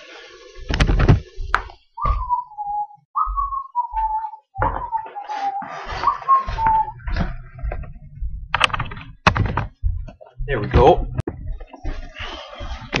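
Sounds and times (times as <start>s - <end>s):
person whistling a tune: 2.0s - 7.2s
handling thumps: 6.4s - 11.9s.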